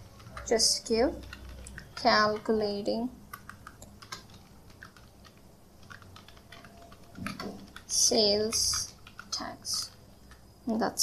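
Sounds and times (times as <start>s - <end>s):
computer keyboard typing: 0.0s - 11.0s.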